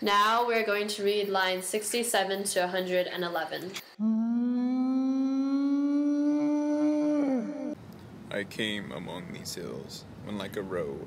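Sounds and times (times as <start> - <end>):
person humming a long note: 4.0 - 7.8.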